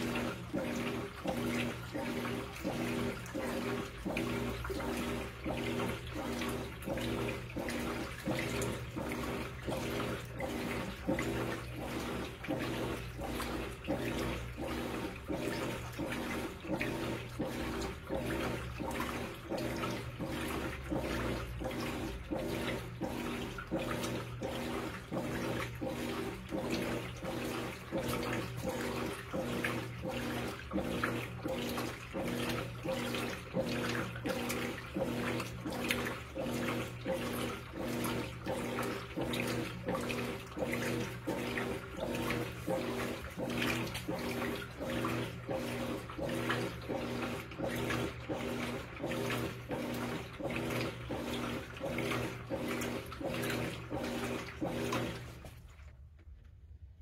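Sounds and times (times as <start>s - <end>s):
wash plate stroking rhythmically: 0.0s - 55.6s
water and clothes sloshing: 0.0s - 56.4s
washing machine motor humming: 0.0s - 57.0s.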